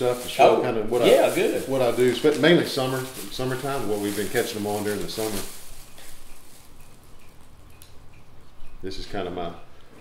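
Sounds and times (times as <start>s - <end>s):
plastic bag rustling: 0.0s - 8.0s.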